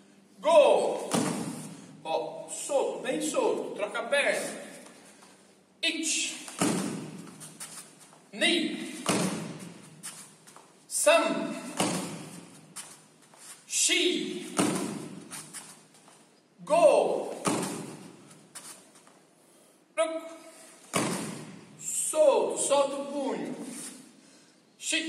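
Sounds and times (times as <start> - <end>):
man shouting: 0.4 - 1.1, 8.4 - 9.0, 11.0 - 11.8, 13.8 - 14.6, 16.6 - 17.4, 20.0 - 20.4, 21.8 - 23.6
bare feet thumping on foam mat: 1.1 - 1.7, 6.5 - 7.8, 9.0 - 10.6, 11.7 - 12.9, 14.5 - 15.6, 17.4 - 18.2, 20.9 - 21.6.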